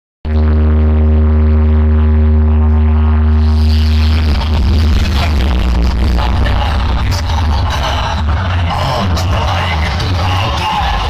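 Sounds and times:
deep electronic bass drone: 0.2s - 11.0s.

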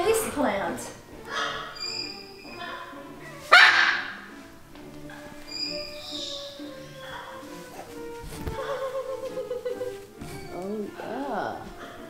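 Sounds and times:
background music: 0.0s - 12.0s
macaw squawk: 1.3s - 4.3s, 5.1s - 7.8s.

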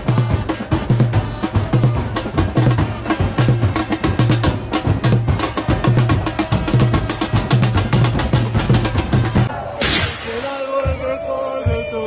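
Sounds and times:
bass drums beating: 0.0s - 12.0s
sharp snare drum hits: 9.8s - 11.0s.

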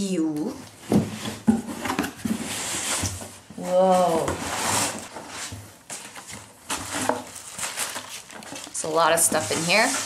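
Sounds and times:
paper and cardboard rustling: 0.5s - 10.0s.

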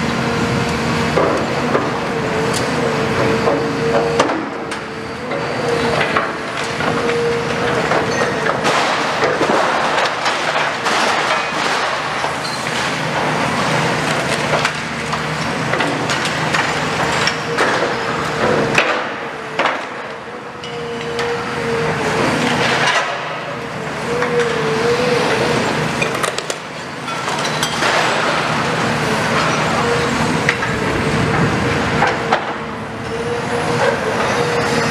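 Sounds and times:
excavator engine and hydraulic drone: 0.0s - 34.9s.

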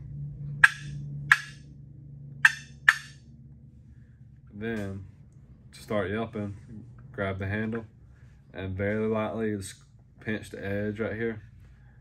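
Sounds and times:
box call turkey clucks: 0.6s - 1.6s, 2.4s - 3.1s.

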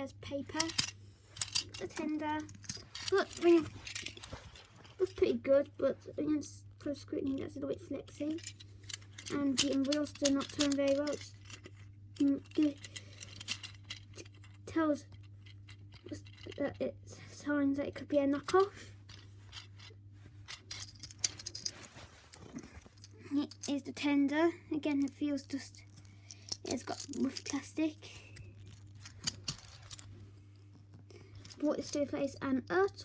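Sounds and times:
faint low hum: 0.0s - 33.0s
plastic toy clicks: 0.6s - 1.8s
plastic toy handling clicks: 0.6s - 4.4s, 8.4s - 14.6s.

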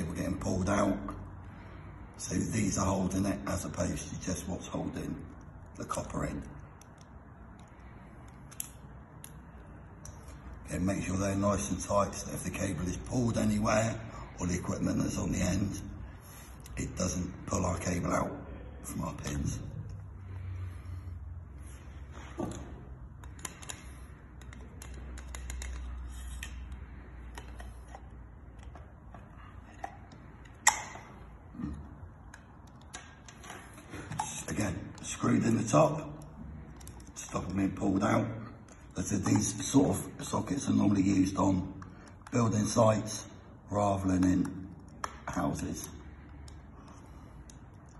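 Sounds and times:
screwdriver clicks and scrapes: 23.2s - 28.8s.

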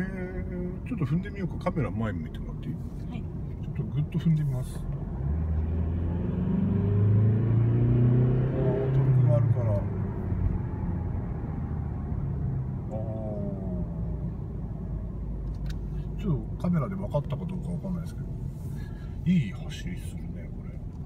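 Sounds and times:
diesel engine accelerating hard: 3.8s - 18.1s.

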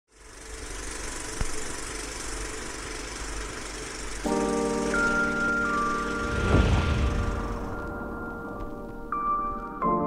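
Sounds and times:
film projector whirring: 0.1s - 6.4s.

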